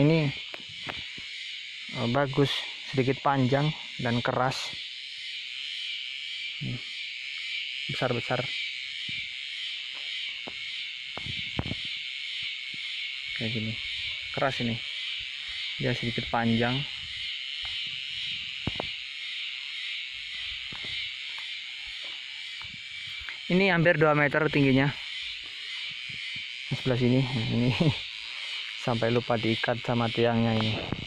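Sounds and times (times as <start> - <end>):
insects chirping in a field: 0.0 - 31.0.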